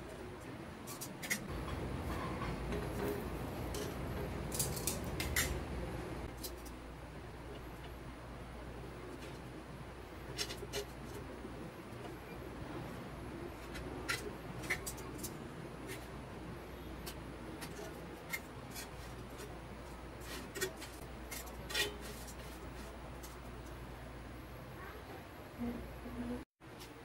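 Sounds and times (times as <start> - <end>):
low steady hum: 0.0 - 27.0
metal utensils clinking on pan: 1.0 - 5.6.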